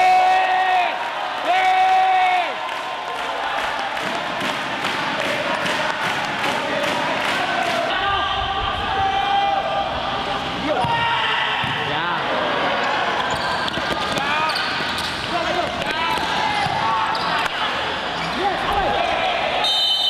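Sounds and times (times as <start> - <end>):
voices and shouts: 5.0 - 20.0
shoes squeaking on court: 13.2 - 18.4.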